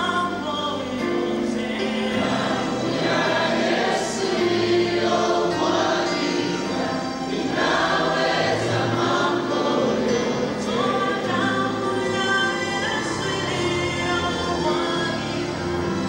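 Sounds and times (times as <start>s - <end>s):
choir singing gospel music: 0.0s - 16.0s
instrumental accompaniment: 0.0s - 16.0s.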